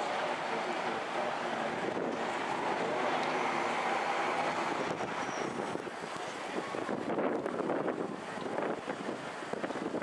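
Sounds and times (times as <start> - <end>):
streetcar running on track: 0.0 - 7.1
street traffic noise: 0.0 - 10.0.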